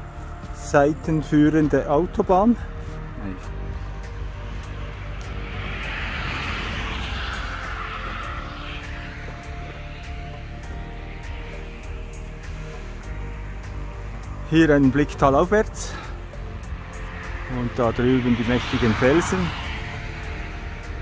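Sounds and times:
motorway traffic rumble: 0.0 - 21.0
soft background music: 0.0 - 21.0
vehicle road noise: 0.0 - 21.0.

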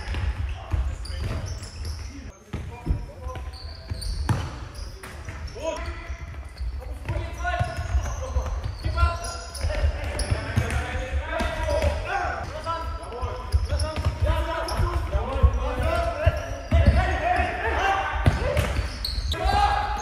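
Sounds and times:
players shouting: 13.8 - 20.0.

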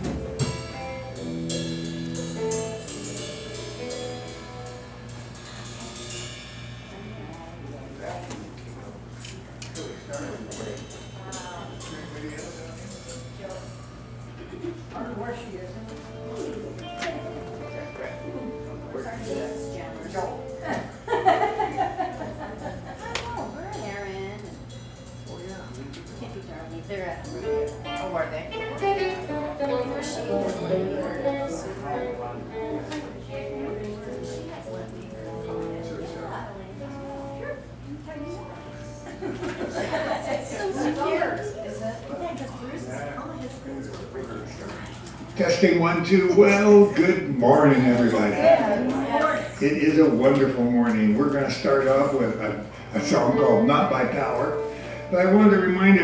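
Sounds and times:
held instrument notes: 0.0 - 7.9, 15.2 - 22.0, 26.4 - 41.9
drum and cymbal hits: 0.0 - 8.8
soft guitar playing: 0.0 - 56.0
people chatting: 6.9 - 24.6, 25.3 - 56.0
people talking: 6.9 - 24.6, 25.3 - 56.0.

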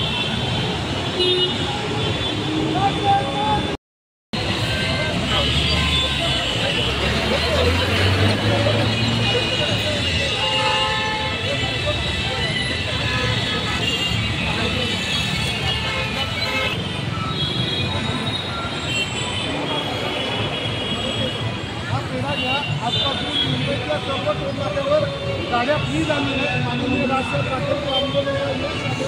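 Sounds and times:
car horns tooting: 4.4 - 24.4
crowd voices: 4.4 - 29.0.

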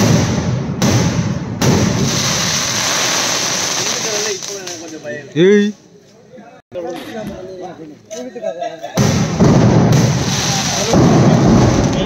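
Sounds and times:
fireworks blasts and crackle: 0.0 - 5.3, 9.0 - 12.0.

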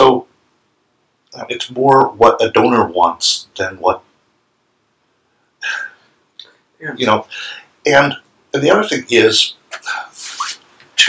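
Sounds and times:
sharp intake of breath: 7.3 - 7.8.

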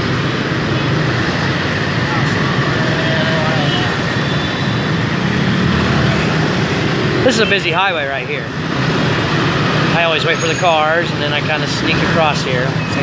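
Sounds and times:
motorbike engines running: 0.0 - 13.0.

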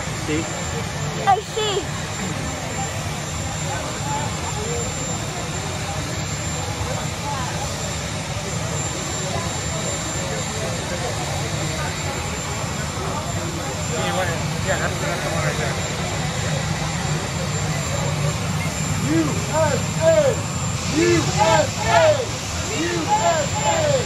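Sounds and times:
crowd chatter: 0.0 - 24.0
helicopter turbine engine running: 0.0 - 24.0.

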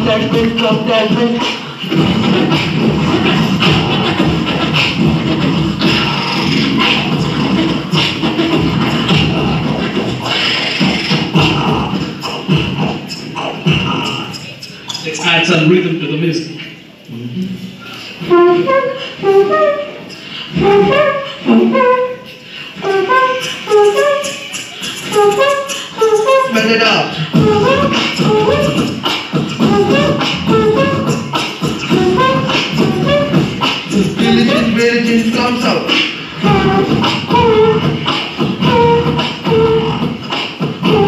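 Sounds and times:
beatboxing through microphones: 0.0 - 41.0.

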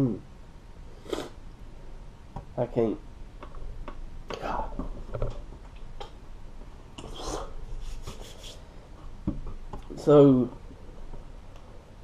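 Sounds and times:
hands rubbing together: 7.0 - 8.7.

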